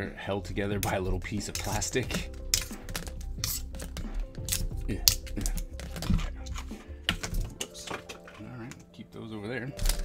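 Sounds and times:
background music: 0.0 - 10.0
plastic pens clicking and clattering: 1.6 - 8.9, 9.8 - 10.0.

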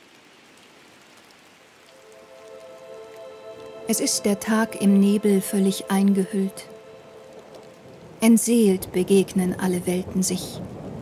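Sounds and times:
rain hiss: 0.0 - 11.0
soft sustained music chords: 1.8 - 9.2.

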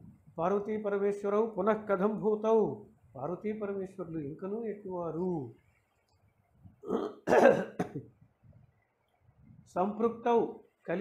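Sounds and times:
man coughing: 6.8 - 8.2.

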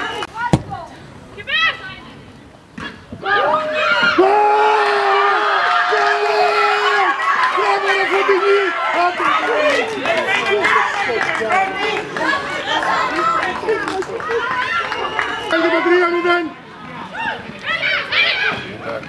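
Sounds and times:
young women shouting and cheering: 3.2 - 15.8, 17.1 - 18.7.

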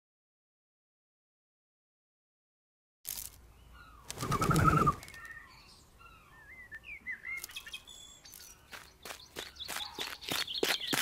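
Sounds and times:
small birds chirping: 3.1 - 11.0
warbling bird call: 3.8 - 5.5
wing flapping: 4.0 - 5.3.

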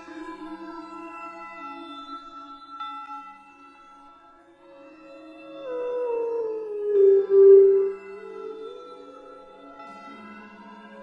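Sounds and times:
ambient music with held tones: 0.0 - 11.0.

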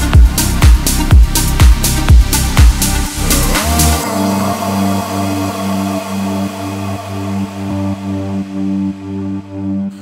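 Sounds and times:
electronic music with low synth: 0.0 - 10.0.

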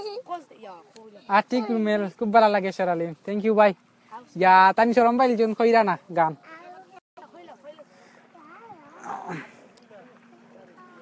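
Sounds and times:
faint indistinct voices: 6.4 - 11.0.

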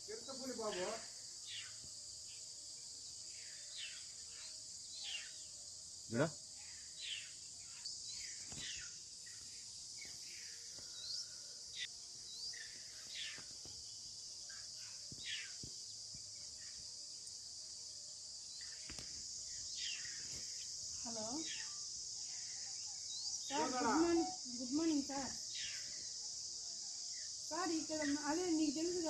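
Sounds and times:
insect chorus: 0.0 - 29.0.

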